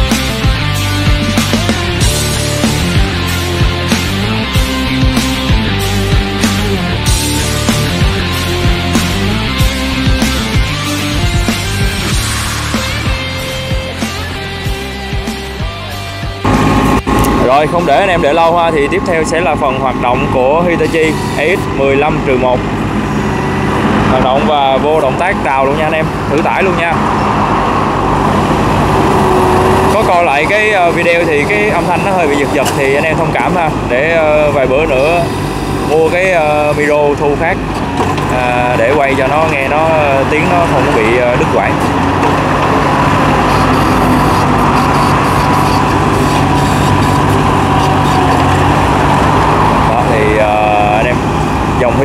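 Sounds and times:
hydraulic boom working: 0.0 - 14.9, 16.4 - 52.0
excavator diesel engine running: 0.0 - 52.0
high whine: 0.0 - 52.0.

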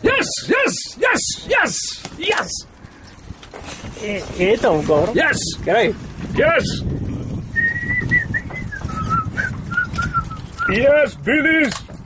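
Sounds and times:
high clear whistle: 7.6 - 10.8.

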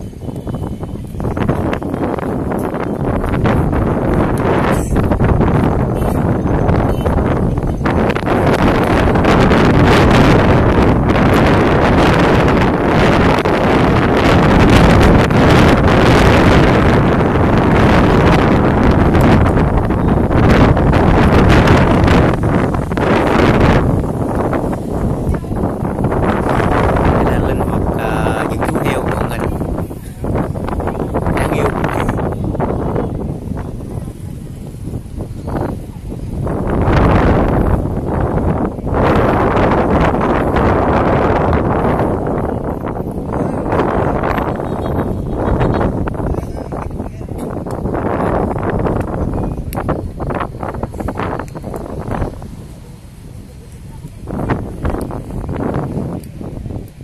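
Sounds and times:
wind buffeting microphone: 0.0 - 57.0.

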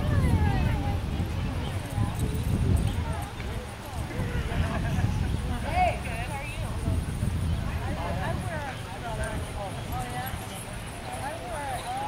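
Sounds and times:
distant group of people talking: 0.0 - 12.0.

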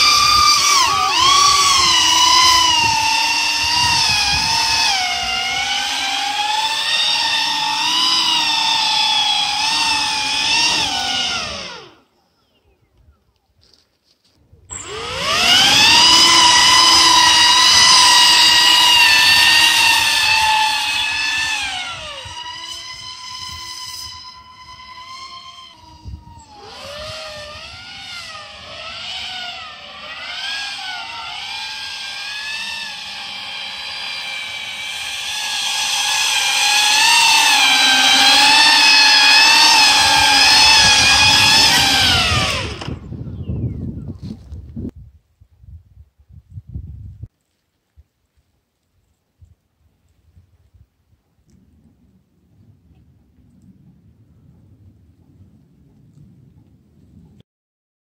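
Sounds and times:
electric motor and propeller whine: 0.0 - 12.2, 14.7 - 43.7.

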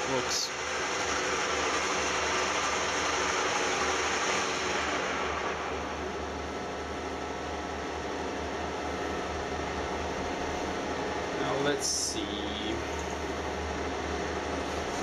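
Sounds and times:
metal lathe whirring and grinding: 0.0 - 8.5
low motor hum: 0.0 - 15.0.

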